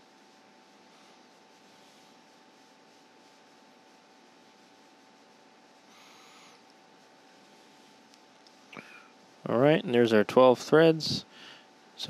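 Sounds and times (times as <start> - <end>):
faint constant tone: 0.0 - 12.0
steady hiss: 0.0 - 12.0.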